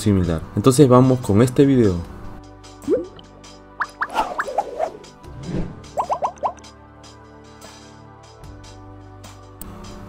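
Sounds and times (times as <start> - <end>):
quick rising chirp-like pops: 3.8 - 4.7, 5.9 - 6.6.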